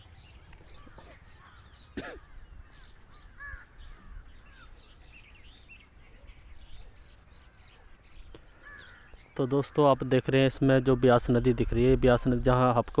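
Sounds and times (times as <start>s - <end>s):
bird chirps: 0.0s - 11.7s.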